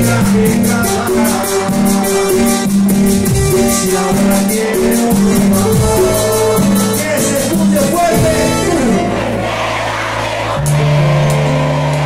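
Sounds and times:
electronic drum pad hits: 0:00.0 - 0:09.2
keyboard chords: 0:00.0 - 0:12.0.

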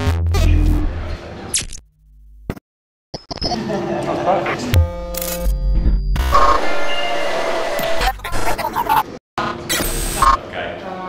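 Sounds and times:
music with glitchy electronic effects: 0:00.0 - 0:01.8, 0:03.2 - 0:03.7, 0:04.4 - 0:10.4.

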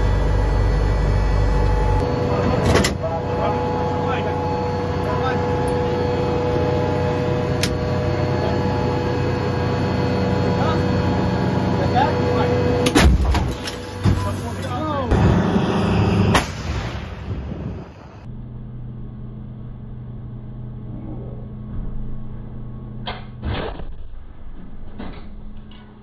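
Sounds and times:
engine and hydraulics hum: 0:00.0 - 0:26.0.

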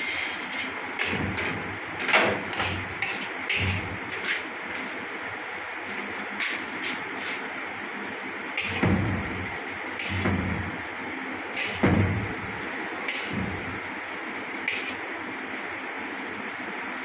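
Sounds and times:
metal knife scraping steel tray: 0:00.1 - 0:04.5, 0:10.0 - 0:10.6, 0:14.7 - 0:15.0.

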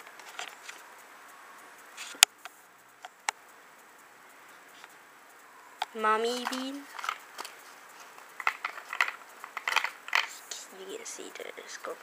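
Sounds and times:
plastic capsules clicking on tray: 0:06.3 - 0:07.6, 0:08.4 - 0:10.4.

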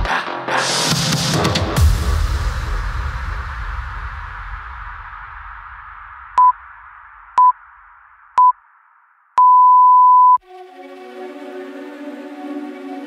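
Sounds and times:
timer long beep: 0:09.4 - 0:10.4
timer short beeps: 0:09.4 - 0:10.4
background music: 0:10.4 - 0:13.0.

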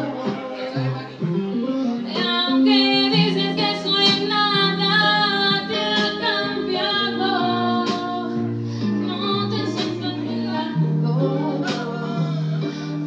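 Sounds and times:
woman singing: 0:00.0 - 0:12.8
backing music: 0:00.0 - 0:13.0.

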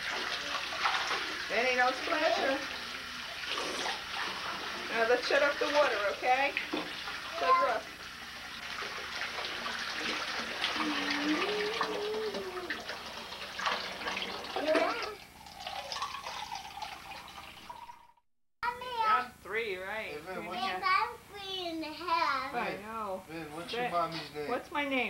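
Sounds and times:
water running into bathtub: 0:00.0 - 0:18.2
small child's voice: 0:07.3 - 0:07.9, 0:10.8 - 0:12.8, 0:14.6 - 0:15.2, 0:18.6 - 0:19.3, 0:20.5 - 0:22.6.

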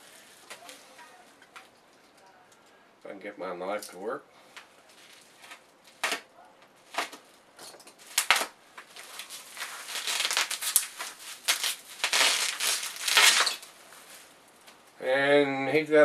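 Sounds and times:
plastic wrapping crinkling: 0:00.0 - 0:02.2, 0:04.7 - 0:14.9.

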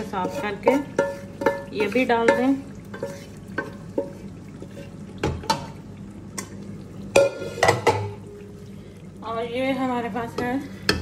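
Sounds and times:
wooden spoon knocking on metal pot: 0:00.1 - 0:04.2, 0:07.1 - 0:08.2.

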